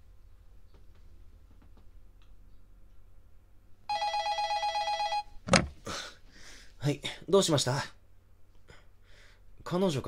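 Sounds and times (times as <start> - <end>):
telephone ringing: 3.9 - 5.4.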